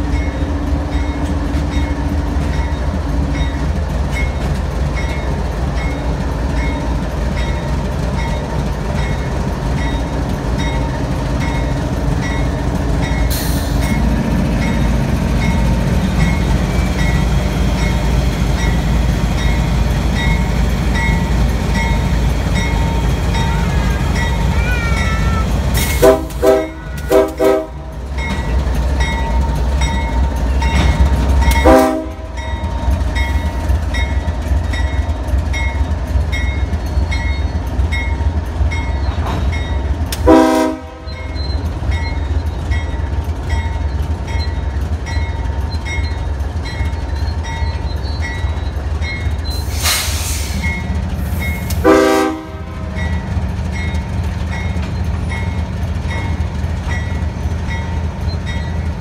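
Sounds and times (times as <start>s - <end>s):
locomotive engine and wheels rumbling: 0.0s - 59.0s
train horn blasts: 25.8s - 27.9s, 31.6s - 32.4s, 40.2s - 41.1s, 51.8s - 52.8s.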